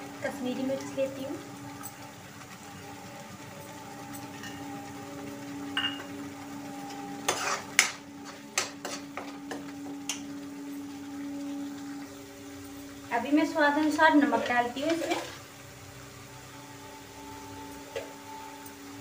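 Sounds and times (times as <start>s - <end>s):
steady hum: 0.0s - 19.0s
paste sizzling: 2.6s - 16.0s
ladle scraping a pan: 7.2s - 9.6s, 14.4s - 15.5s.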